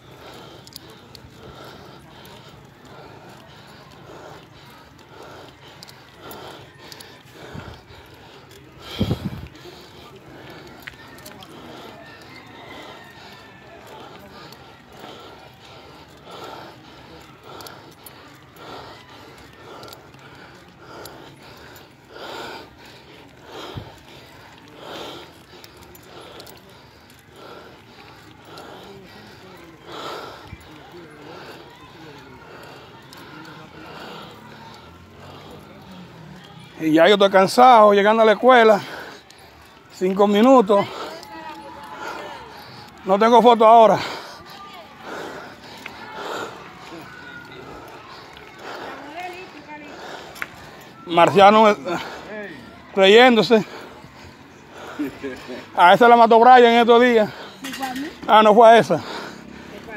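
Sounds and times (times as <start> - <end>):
cyclist breathing heavily: 0.0 - 59.9
faint background voices: 0.0 - 59.9
low street noise: 0.0 - 59.9
rider speaking: 22.3 - 59.9.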